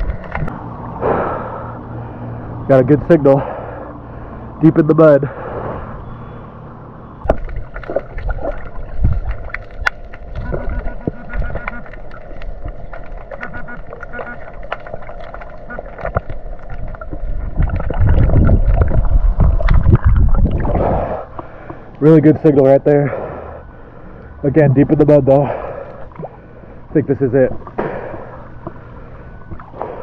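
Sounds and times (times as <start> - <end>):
water sloshing and splashing: 0.0 - 2.5, 5.4 - 30.0
muffled underwater rumble: 7.1 - 21.9
underwater clicks and knocks: 7.2 - 20.6.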